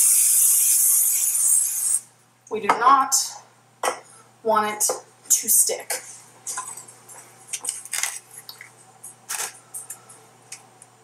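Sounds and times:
crinkly foil handling: 7.6s - 8.7s, 9.3s - 10.0s.

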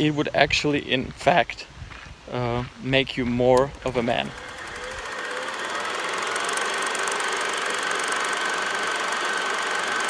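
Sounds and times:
film projector whirring clatter: 3.6s - 10.0s.

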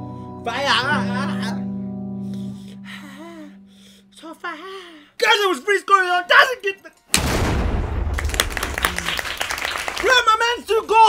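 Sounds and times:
loud boom with low rumble: 7.2s - 9.3s.

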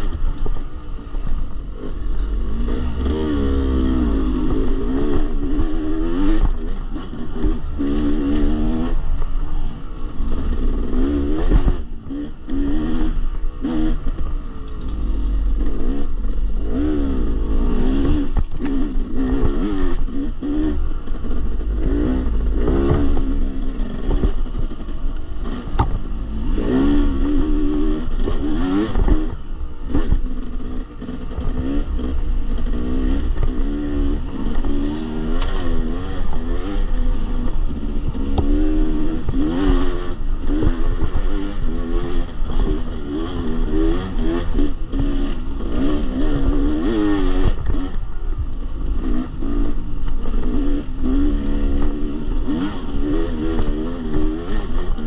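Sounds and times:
dirt bike engine revving: 0.0s - 55.0s.

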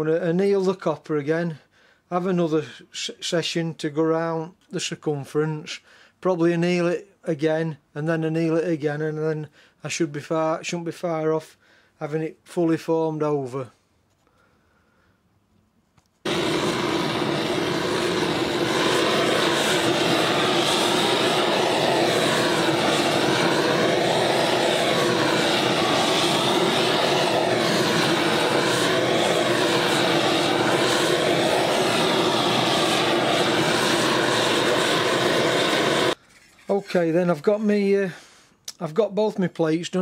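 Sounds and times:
gas torch flame roaring: 16.3s - 36.2s.

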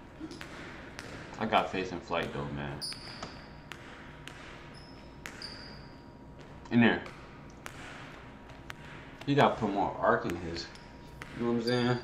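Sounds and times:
basketball bouncing on wooden floor: 0.0s - 12.0s
sneaker squeak: 2.2s - 12.0s.

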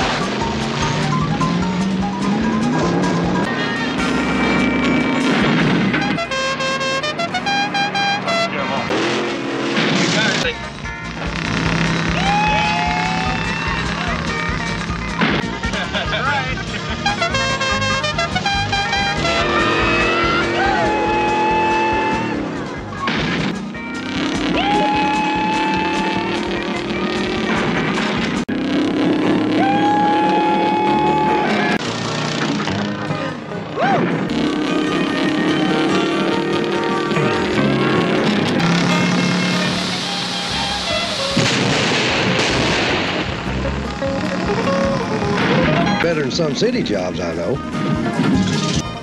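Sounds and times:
background music: 0.0s - 9.2s, 10.2s - 49.0s
car engine noise: 0.0s - 49.0s.

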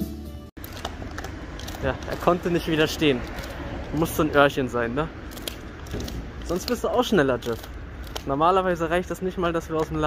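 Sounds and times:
shop background music: 0.0s - 0.6s
dog chewing crunchy chew: 0.6s - 2.4s, 3.1s - 3.6s, 5.3s - 8.3s.

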